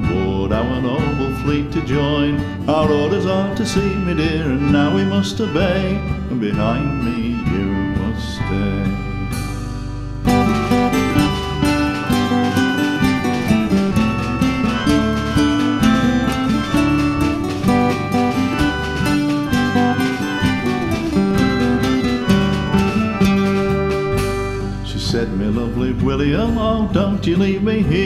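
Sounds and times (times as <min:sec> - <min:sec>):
rapid plucked acoustic guitar: 0:00.0 - 0:28.0.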